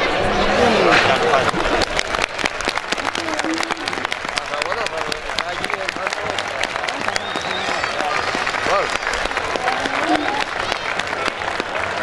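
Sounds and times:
crowd applauding: 0.8s - 12.0s
voices calling out: 2.9s - 12.0s.

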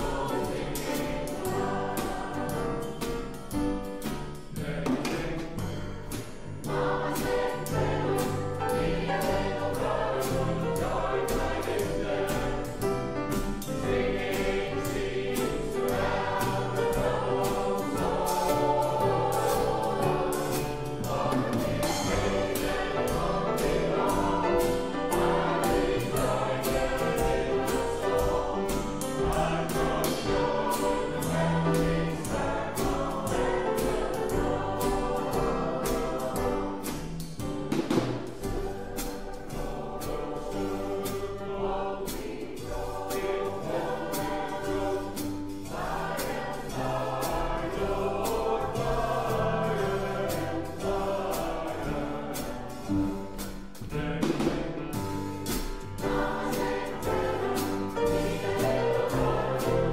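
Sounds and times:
band accompaniment with steady beat: 0.0s - 59.9s
choir singing gospel song: 0.0s - 59.9s.

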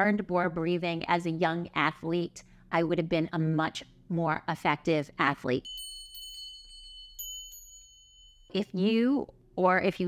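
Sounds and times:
high bell-like chime: 5.6s - 8.6s.

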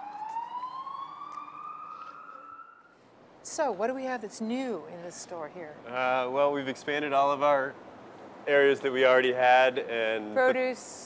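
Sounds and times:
emergency siren wailing: 0.0s - 3.0s.

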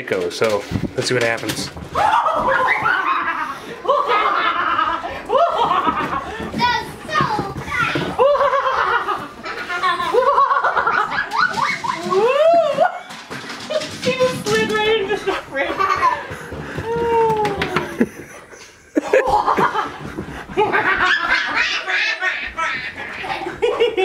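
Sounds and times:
people laughing: 2.3s - 6.5s, 8.1s - 14.0s, 15.2s - 24.0s.

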